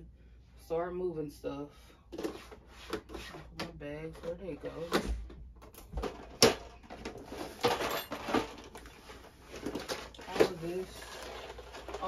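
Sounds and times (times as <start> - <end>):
plastic drawers clattering: 2.2 - 12.0
bagged stock being moved: 6.0 - 12.0.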